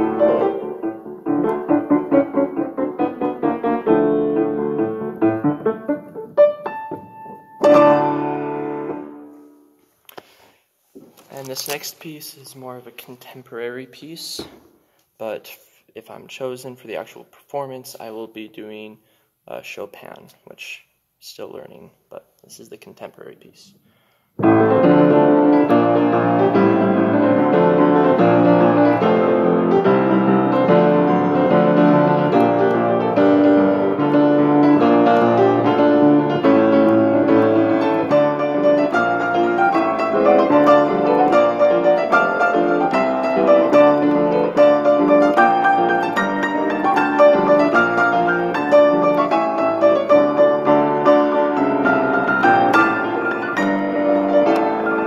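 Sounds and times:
solo piano piece: 0:00.0 - 0:09.7, 0:24.4 - 0:55.0.

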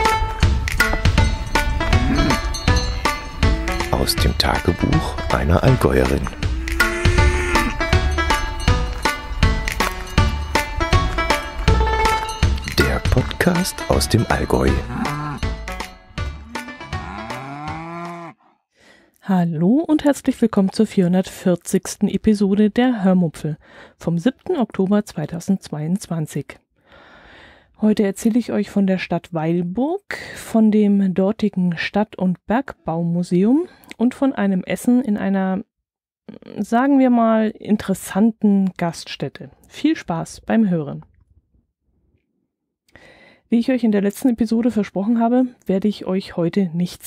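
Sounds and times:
cow mooing: 0:01.9 - 0:02.6, 0:03.4 - 0:05.2, 0:05.9 - 0:08.0, 0:14.7 - 0:18.6.

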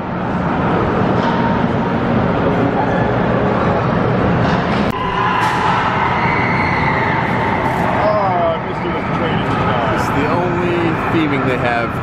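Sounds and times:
crowd voices: 0:00.0 - 0:12.0.

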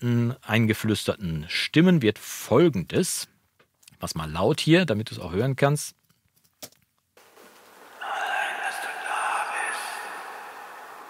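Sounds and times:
faint rising hiss: 0:07.2 - 0:11.0
whispered backing vocals: 0:08.0 - 0:11.0.

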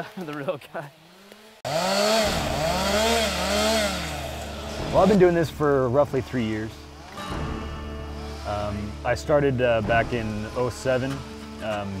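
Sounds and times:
chainsaw cutting wood: 0:00.9 - 0:05.6, 0:10.0 - 0:12.0.

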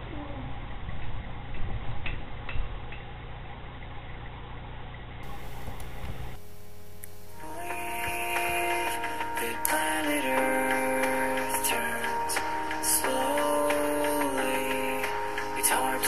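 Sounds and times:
low room hum: 0:00.0 - 0:16.0
held synth chords: 0:05.2 - 0:16.0.

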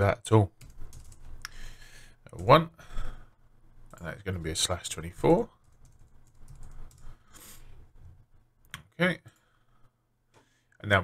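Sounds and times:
computer keyboard typing: 0:00.6 - 0:01.3, 0:05.6 - 0:07.2.

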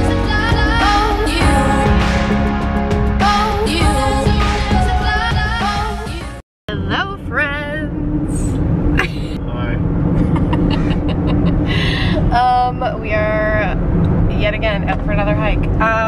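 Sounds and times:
car road and engine rumble: 0:00.0 - 0:16.0
woman talking: 0:06.7 - 0:09.4, 0:10.6 - 0:16.0
woman laughing: 0:09.0 - 0:09.4, 0:10.2 - 0:12.3.

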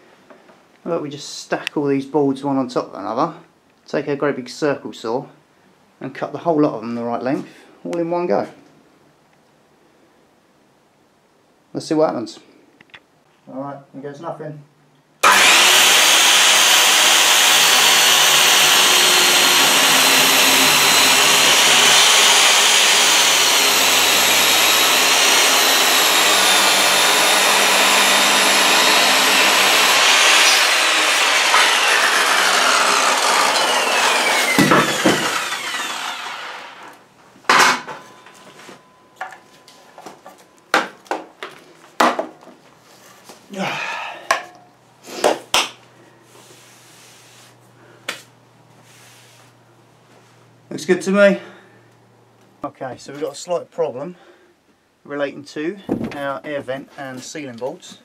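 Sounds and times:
circular saw cutting boards: 0:15.2 - 0:42.2.

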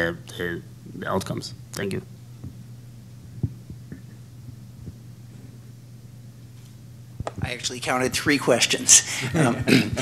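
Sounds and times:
low electrical hum: 0:00.0 - 0:10.0
soft low thumps: 0:02.4 - 0:05.4.

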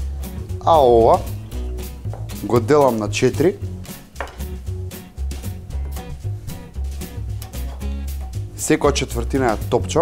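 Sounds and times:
background music with bass: 0:00.0 - 0:10.0
knife knocking on wooden board: 0:02.0 - 0:02.4, 0:04.2 - 0:04.6, 0:05.7 - 0:06.2.

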